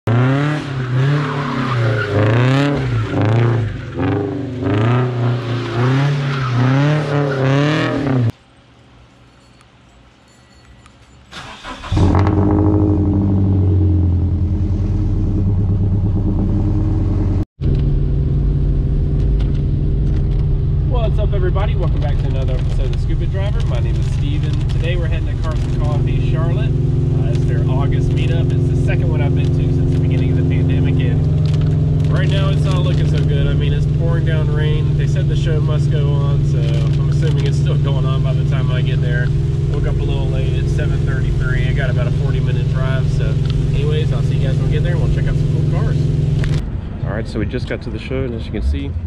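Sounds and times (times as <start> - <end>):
car engine revving: 0.1 - 8.4, 11.4 - 49.0
car engine idling: 11.3 - 48.6
person speaking: 20.9 - 31.4.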